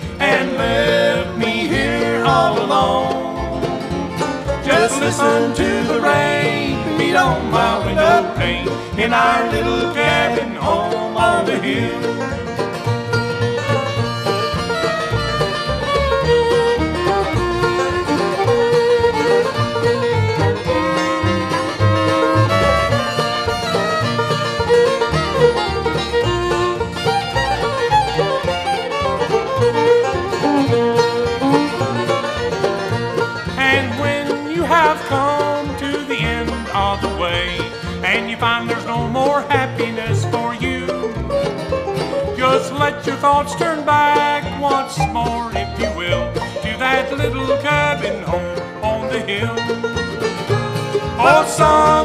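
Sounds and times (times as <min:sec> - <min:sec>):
bluegrass band playing: 0:00.0 - 0:52.0
fiddle lead: 0:00.0 - 0:52.0.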